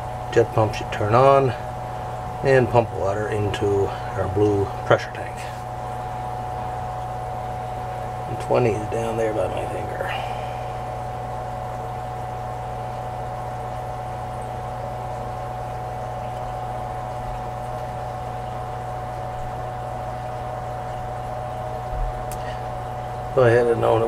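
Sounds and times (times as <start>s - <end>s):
low hum: 0.0s - 24.0s.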